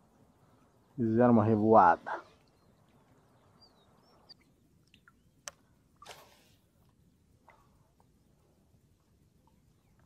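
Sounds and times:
faint bird chirps: 2.1s - 5.8s, 9.4s - 10.0s.

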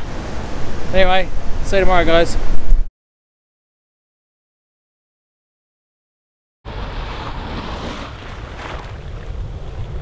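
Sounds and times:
surf washing in: 0.0s - 2.8s, 6.7s - 10.0s.

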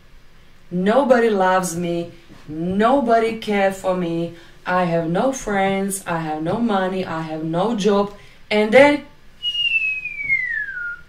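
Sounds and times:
whistle gliding down in pitch: 9.4s - 11.0s.

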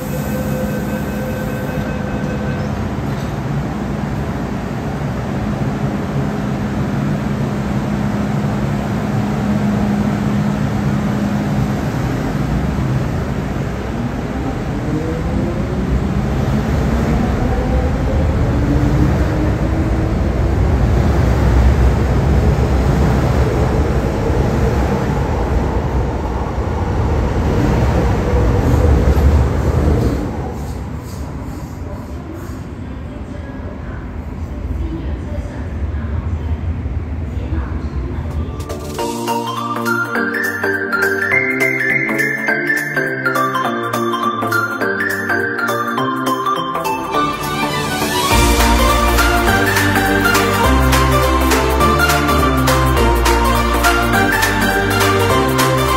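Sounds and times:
wheels rumbling on rails: 0.0s - 39.0s
electric train hum: 0.0s - 55.9s.

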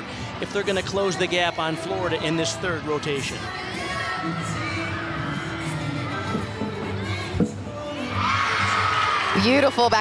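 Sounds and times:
crowd cheering: 8.0s - 10.0s.

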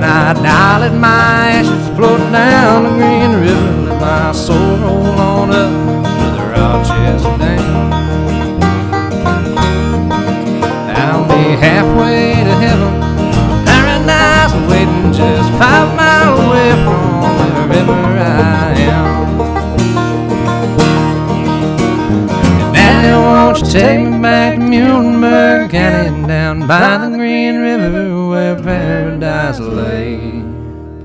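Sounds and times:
acoustic guitar strummed and picked: 0.0s - 31.0s.

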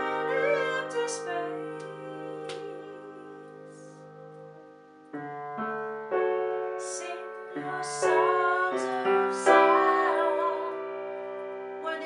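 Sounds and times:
woman singing with vibrato: 0.0s - 3.8s, 6.8s - 10.9s, 11.8s - 12.0s
piano chords: 0.0s - 12.0s.

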